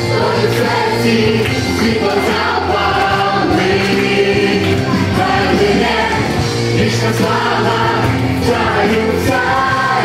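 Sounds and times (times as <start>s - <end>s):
congregation singing: 0.0s - 10.0s.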